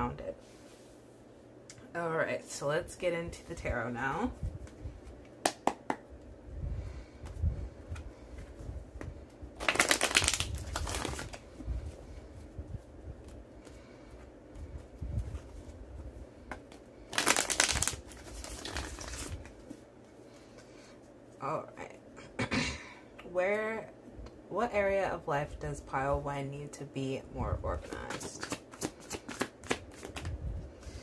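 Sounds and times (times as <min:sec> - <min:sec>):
soft card handling: 0:16.4 - 0:20.7, 0:27.8 - 0:30.4
rapid card flicking: 0:28.1 - 0:30.3.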